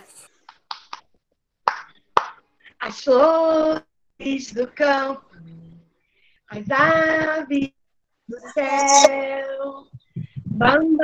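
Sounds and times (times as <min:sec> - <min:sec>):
sharp hand claps: 0:00.4 - 0:02.4.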